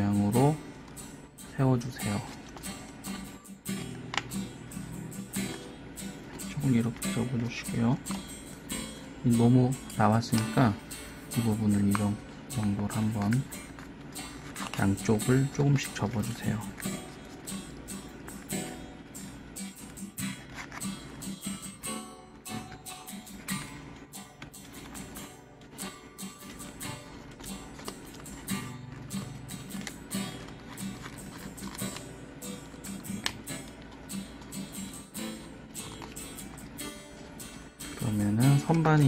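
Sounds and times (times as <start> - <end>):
acoustic guitar music: 0.0 - 39.0.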